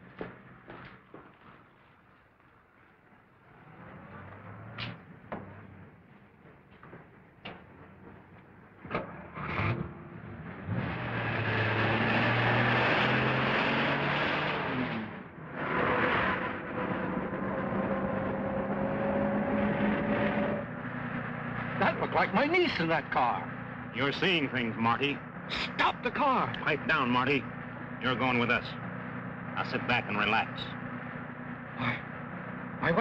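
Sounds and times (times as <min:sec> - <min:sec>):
car engine starting and pulling away: 0:03.0 - 0:33.0.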